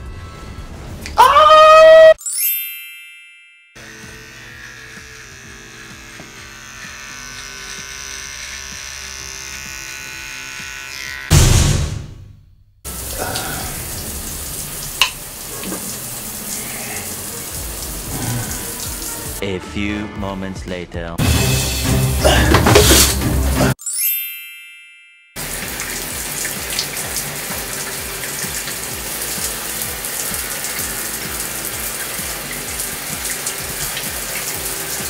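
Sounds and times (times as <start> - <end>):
high ringing tone: 2.2 - 5.0, 23.8 - 25.7
electric body trimmer running: 3.8 - 11.5, 25.4 - 35.0
shower water running: 12.9 - 19.4, 22.3 - 23.6, 25.4 - 35.0.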